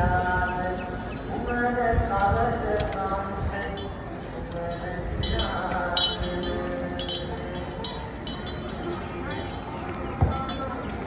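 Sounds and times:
metal chain clinking: 4.5 - 11.0.

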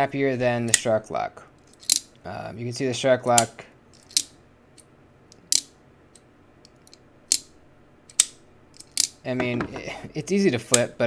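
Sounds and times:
folding knife clicking: 8.1 - 9.2.

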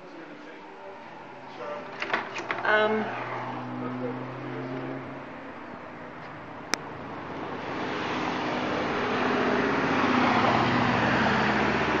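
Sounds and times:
car engine and tyre noise: 0.2 - 12.0.

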